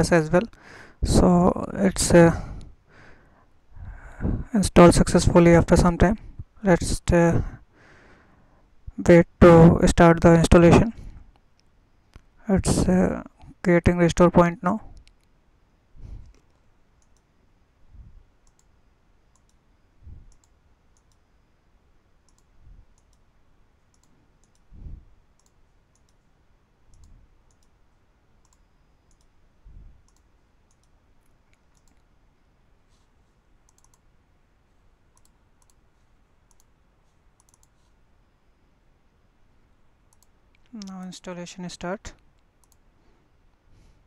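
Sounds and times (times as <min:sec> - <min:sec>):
faint scattered clicks: 0:14.9 - 0:15.4, 0:16.2 - 0:17.3, 0:18.4 - 0:19.6, 0:20.3 - 0:21.2, 0:22.2 - 0:24.7, 0:25.3 - 0:26.3, 0:26.9 - 0:27.8, 0:28.4 - 0:29.4, 0:30.0 - 0:32.1, 0:33.6 - 0:34.1, 0:35.1 - 0:38.0, 0:40.1 - 0:41.1, 0:42.2 - 0:42.9.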